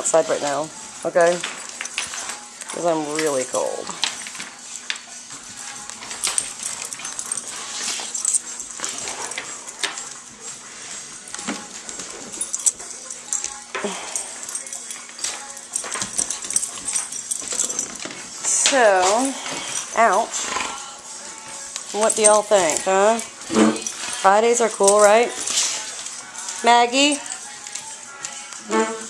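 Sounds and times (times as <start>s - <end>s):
collar tags jingling: 0.0s - 29.0s.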